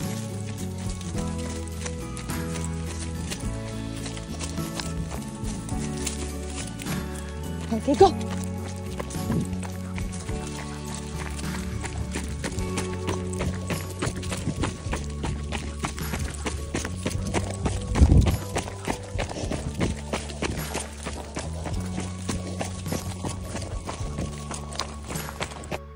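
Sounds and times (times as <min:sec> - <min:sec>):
background music with held tones: 0:00.0 - 0:25.9
footsteps running on gravel: 0:00.0 - 0:25.9.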